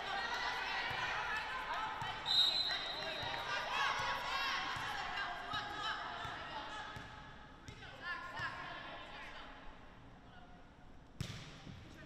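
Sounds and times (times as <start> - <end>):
referee's whistle blast: 2.2 - 3.2.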